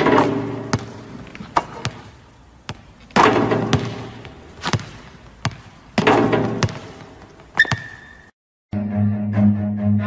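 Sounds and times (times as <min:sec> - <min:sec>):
basketball bouncing on wooden floor: 0:00.0 - 0:08.3
bowed string music: 0:08.8 - 0:10.0.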